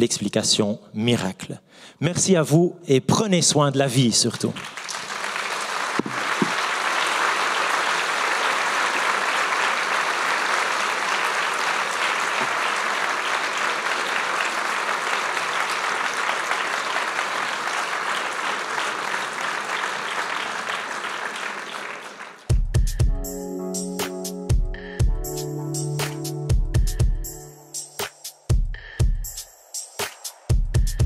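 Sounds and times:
audience applauding: 0:04.3 - 0:22.6.

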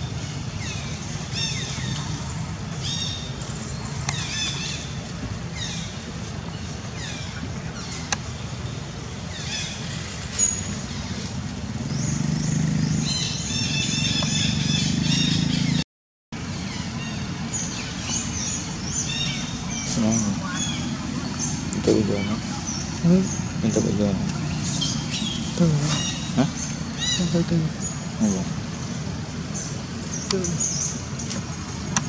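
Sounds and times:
low engine rumble: 0:00.0 - 0:15.8, 0:16.4 - 0:32.0
small birds chirping: 0:00.0 - 0:15.8, 0:16.4 - 0:32.0.

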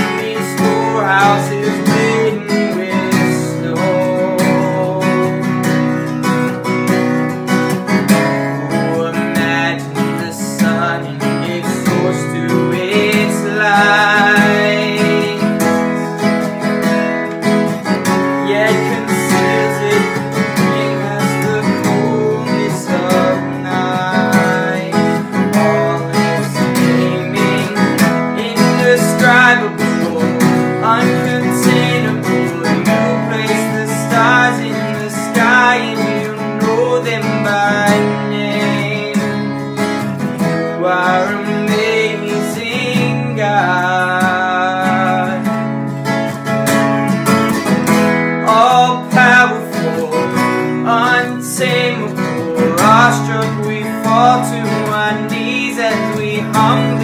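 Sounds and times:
acoustic guitars strumming: 0:00.0 - 0:57.0
young man singing: 0:00.0 - 0:57.0.

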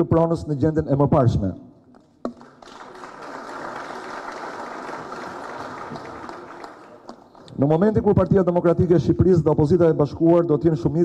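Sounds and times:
audience applauding: 0:02.4 - 0:07.5.

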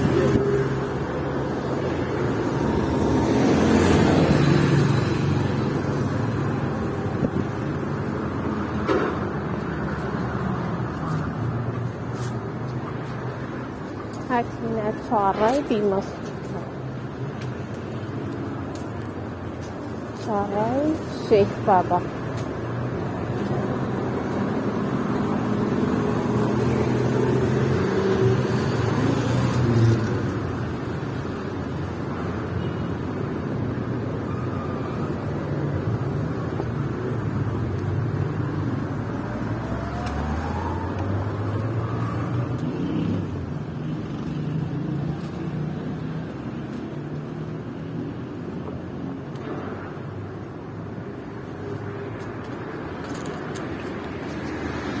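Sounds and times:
vehicle engines on street: 0:00.0 - 0:55.0.

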